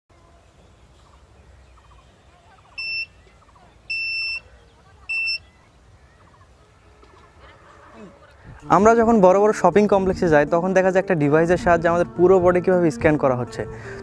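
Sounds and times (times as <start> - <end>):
metal detector buzzer beeping: 2.8 - 3.1, 3.9 - 4.4, 5.1 - 5.4.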